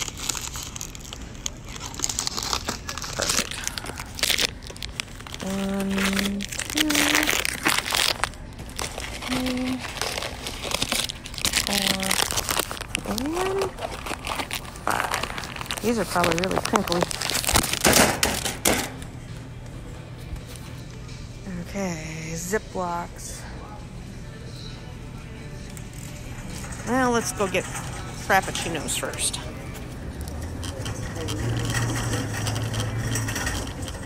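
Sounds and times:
wrappers crinkling: 0.0s - 18.7s, 25.4s - 34.0s
shopping cart wheels rumbling: 26.1s - 34.0s
metal rattles and clinks: 30.6s - 34.0s.

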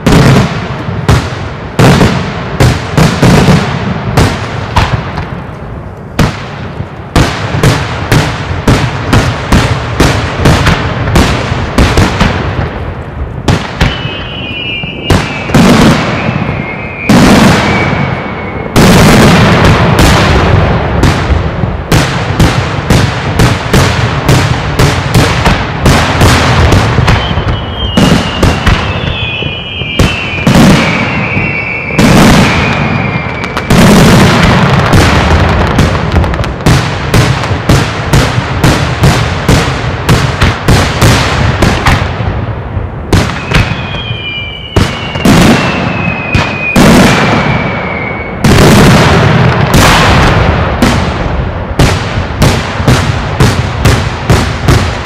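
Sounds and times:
firecracker bangs: 0.0s - 55.0s
firework whistles sliding down: 13.8s - 18.9s, 27.1s - 33.9s, 43.4s - 48.4s.

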